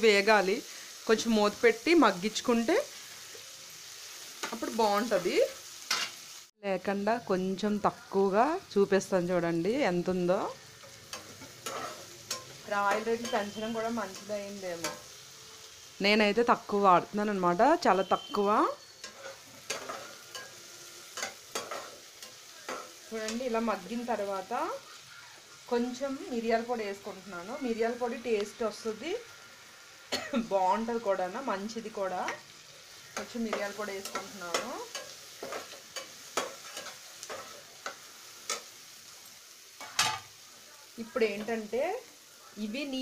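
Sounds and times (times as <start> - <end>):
faint frying sizzle: 0.0 - 43.0
spatula scraping against pan: 10.6 - 15.2, 18.4 - 23.6, 32.2 - 38.7.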